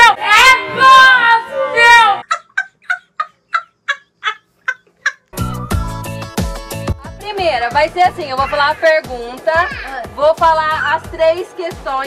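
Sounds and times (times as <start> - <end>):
cackling laugh sound effect: 2.2 - 5.4.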